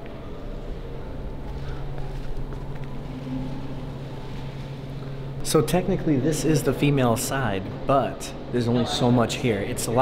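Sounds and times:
faint rumble: 0.0s - 6.6s
low hum: 0.0s - 10.0s.

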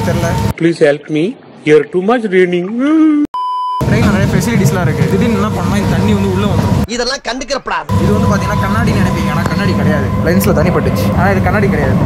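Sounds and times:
short electronic beep: 3.4s - 4.0s
man talking: 3.8s - 12.0s.

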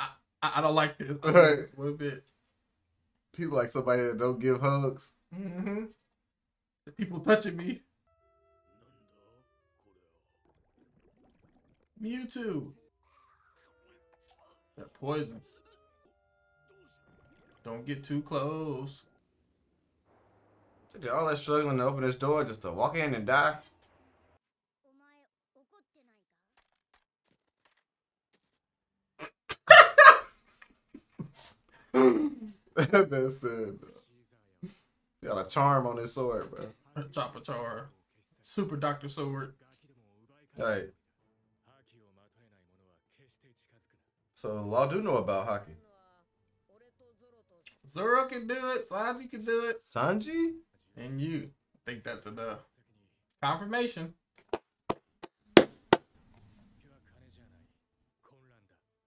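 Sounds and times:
man laughing loudly: 29.5s - 30.3s, 32.0s - 33.3s
slow hand claps: 54.5s - 56.1s.

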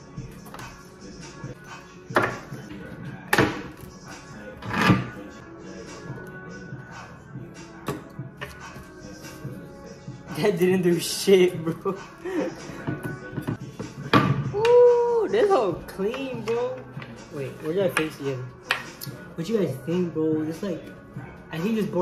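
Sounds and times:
background music with steady beat: 0.0s - 22.0s.

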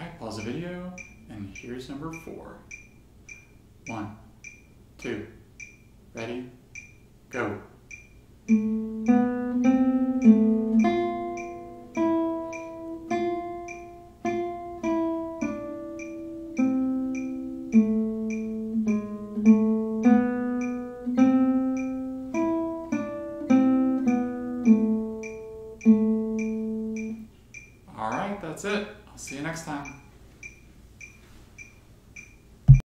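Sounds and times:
metronome clicks: 0.3s - 4.8s, 5.5s - 32.8s
classical guitar melody: 8.5s - 27.3s.

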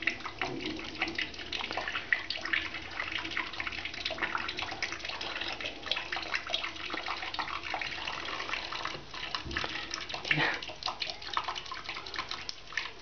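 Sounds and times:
tap water splashing into sink: 0.0s - 13.0s
water drips: 0.0s - 13.0s.

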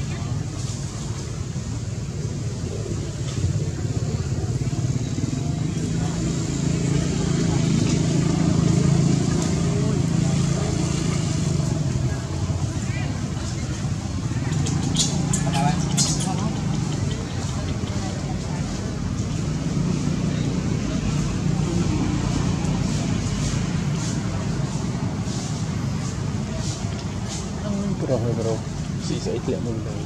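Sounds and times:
people's voices: 0.0s - 30.0s.

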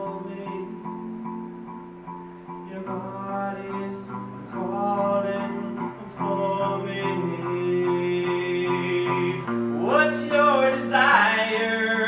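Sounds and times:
man singing long notes: 0.0s - 1.9s, 2.5s - 12.0s
electric guitar: 0.0s - 12.0s.

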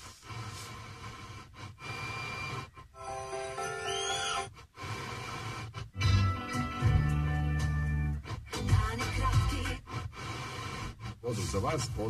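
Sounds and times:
radio hiss: 0.0s - 3.0s, 4.6s - 5.9s, 8.8s - 12.0s
radio broadcast music: 0.0s - 12.0s.

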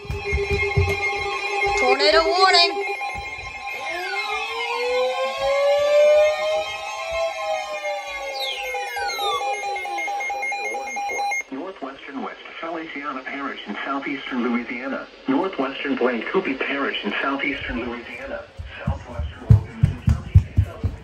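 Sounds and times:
pulsing electronic alarm tones: 2.7s - 11.4s
sliding siren-like tones: 2.7s - 11.4s.

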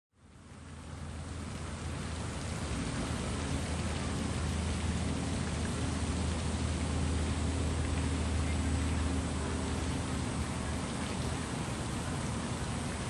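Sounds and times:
fountains splashing into pond: 0.2s - 13.0s.

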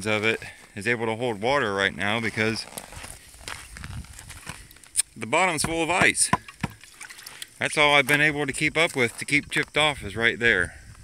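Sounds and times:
hatchet tapping ice: 5.5s - 6.8s.

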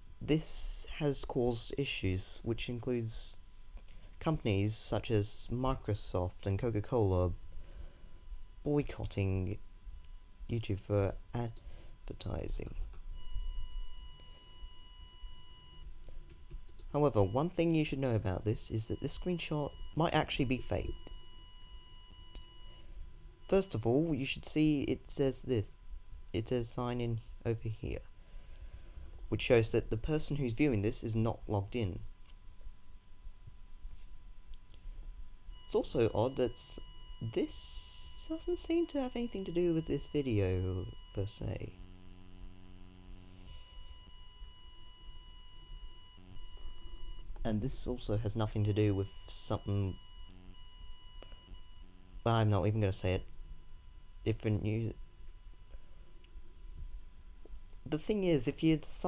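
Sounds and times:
high-pitched electronic whine: 34.9s - 59.0s.

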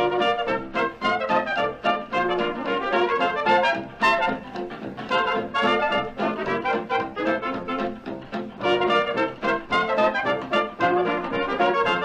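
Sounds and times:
dance orchestra playing: 0.0s - 12.0s
trumpets and trombones short notes: 0.0s - 12.0s.

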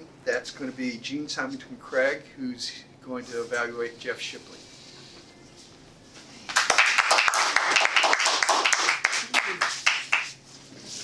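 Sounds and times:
audience applauding: 6.5s - 10.4s.

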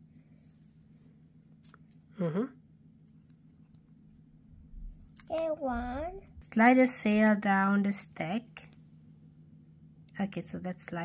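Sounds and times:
person speaking: 5.3s - 6.5s.

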